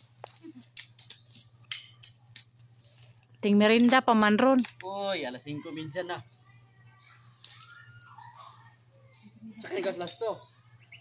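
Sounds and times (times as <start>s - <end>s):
bird chirping: 0.0s - 3.2s, 4.5s - 11.0s.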